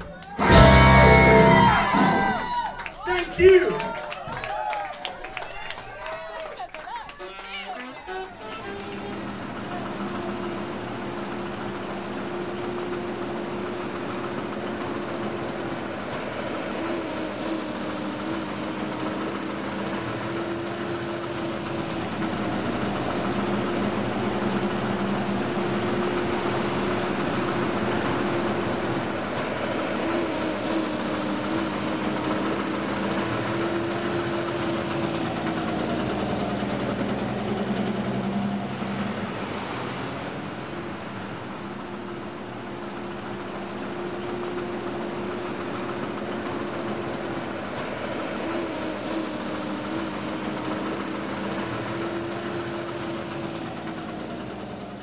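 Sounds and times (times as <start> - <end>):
engines idling hum: 0.0 - 5.4, 6.0 - 55.0
passing vehicles: 0.0 - 55.0.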